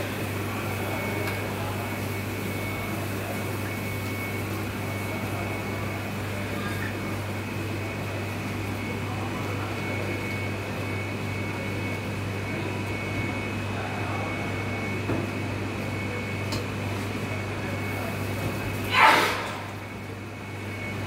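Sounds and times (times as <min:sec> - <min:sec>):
electrical hum of kitchen equipment: 0:00.0 - 0:21.0.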